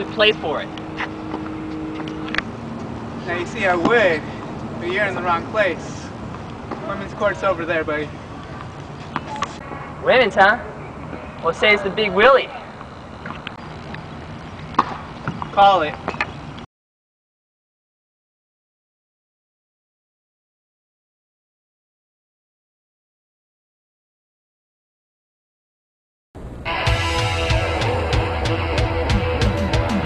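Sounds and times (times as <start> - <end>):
steady background hum: 0.0 - 16.6
outdoor background noise: 0.0 - 16.7.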